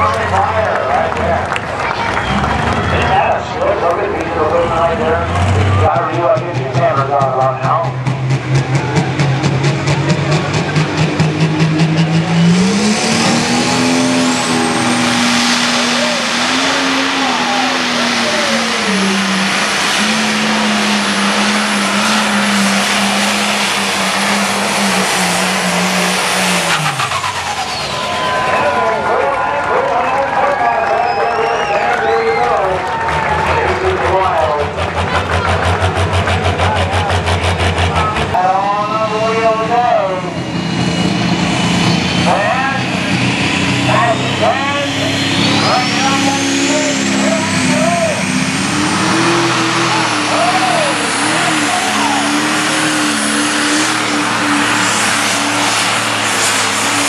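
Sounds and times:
tractor diesel engine revving: 0.0 - 57.0.

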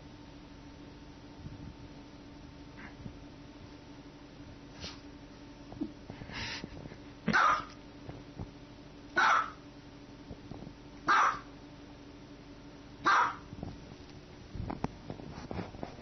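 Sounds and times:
small dog barking: 7.3 - 7.8, 9.1 - 9.6, 11.0 - 11.5, 13.0 - 13.5.

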